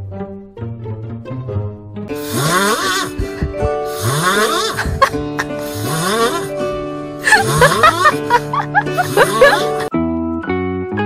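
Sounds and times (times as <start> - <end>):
background music with held notes: 0.0 - 11.0
snoring: 2.2 - 4.8, 5.4 - 6.6, 7.3 - 8.3.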